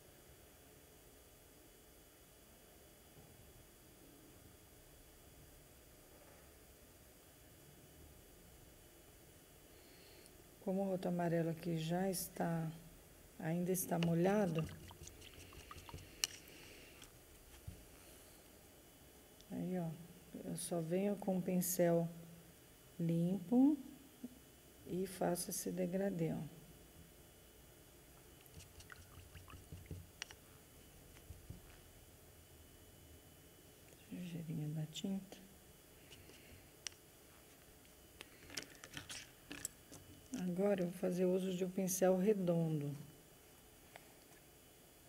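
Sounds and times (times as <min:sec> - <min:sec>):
paintbrush rinsed in water cup: 0:13.8 - 0:16.5, 0:28.4 - 0:30.1
brush tapping plastic cup: 0:14.0 - 0:16.4, 0:28.4 - 0:30.4.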